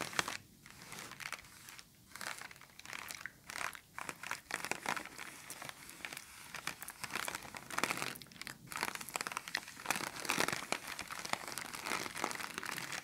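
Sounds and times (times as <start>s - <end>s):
plastic bag crinkling: 0.0s - 13.0s.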